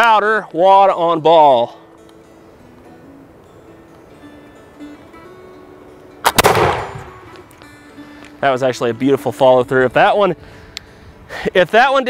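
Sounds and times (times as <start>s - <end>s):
musket gunshot: 6.2s - 7.4s.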